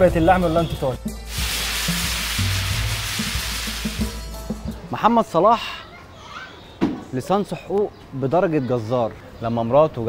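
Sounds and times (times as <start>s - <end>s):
music with low bass: 0.0s - 5.0s
whoosh hiss: 1.3s - 4.3s.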